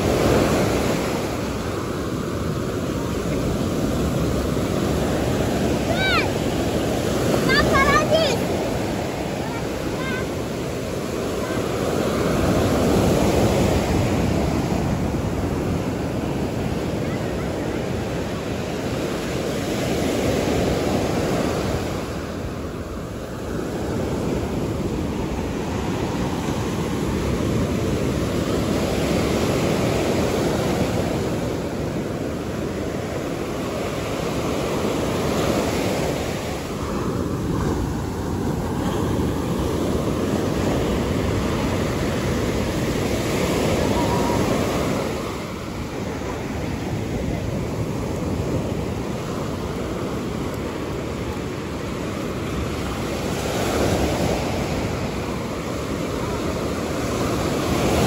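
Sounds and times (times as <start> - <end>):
ocean waves washing up beach: 0.0 - 58.0.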